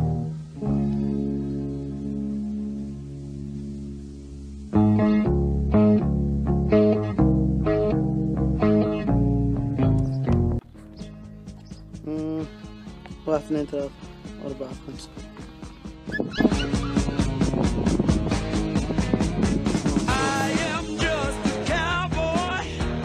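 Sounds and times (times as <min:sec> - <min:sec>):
instrumental ballad with plucked notes: 0:00.0 - 0:23.0.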